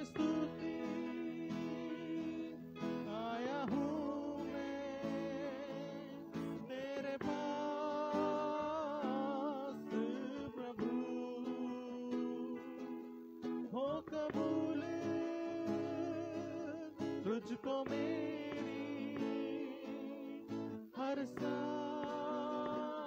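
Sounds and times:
hand drums: 0.0s - 9.1s, 17.0s - 20.2s, 21.2s - 23.0s
acoustic guitar strumming: 0.0s - 23.0s.

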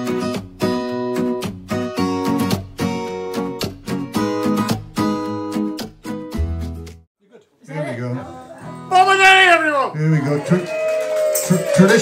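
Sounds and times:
acoustic guitar: 0.0s - 7.1s, 7.7s - 10.0s
person talking: 7.2s - 10.6s.

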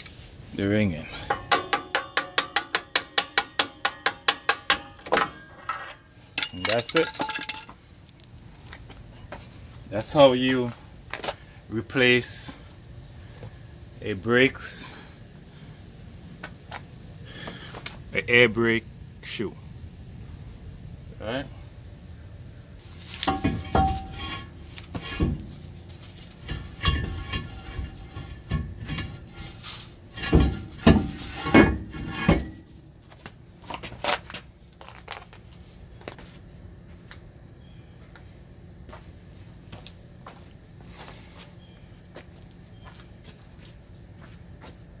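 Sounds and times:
brake drum clanking on metal: 26.4s - 32.6s.

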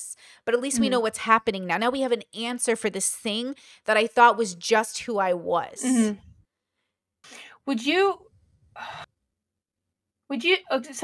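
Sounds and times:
spoken word: 5.8s - 6.2s.

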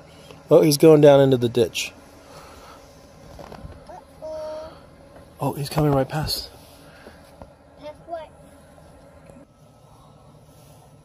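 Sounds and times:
vehicle engine low rumble: 0.0s - 11.0s.

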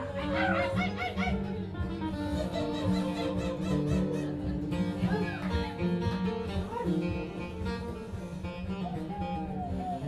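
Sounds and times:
acoustic folk band playing: 0.0s - 10.0s.

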